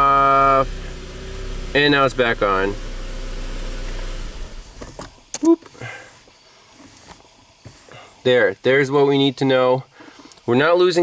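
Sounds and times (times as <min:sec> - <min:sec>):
car engine running: 0:00.0 - 0:05.3.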